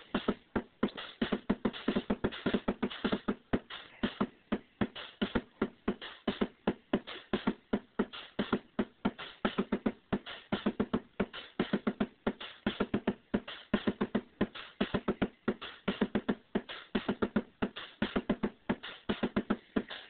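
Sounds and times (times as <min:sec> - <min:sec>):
electronic drum beat: 0:00.0 - 0:20.0.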